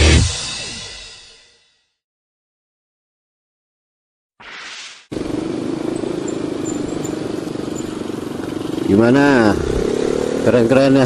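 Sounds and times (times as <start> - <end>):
motorcycle engine cruising: 5.1 - 11.0.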